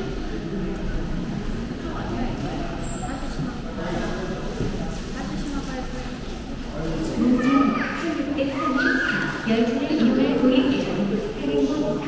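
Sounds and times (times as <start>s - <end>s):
echoing indistinct voices: 0.0s - 12.0s.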